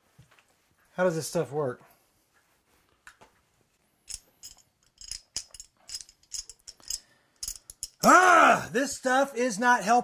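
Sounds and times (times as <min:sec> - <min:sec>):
metal puzzle pieces clicking: 0:04.1 - 0:08.0.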